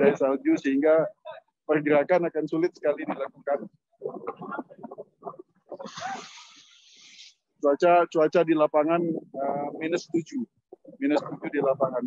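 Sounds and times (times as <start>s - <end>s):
hiss: 5.9s - 7.3s.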